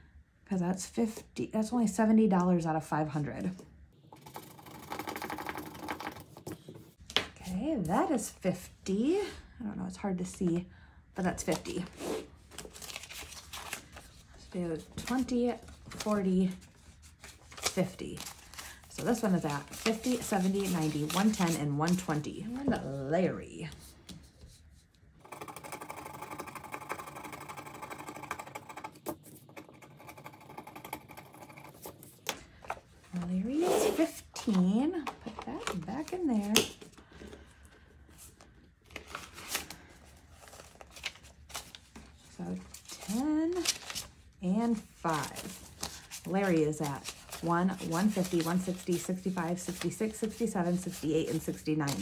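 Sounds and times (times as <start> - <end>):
scratching on paper: 11.8 - 22.2, 45.1 - 52.0.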